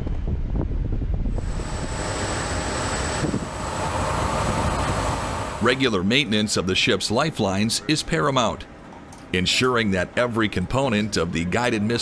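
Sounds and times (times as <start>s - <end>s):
wind buffeting microphone: 0.0s - 5.8s
hiss of wind and sea: 1.3s - 5.8s.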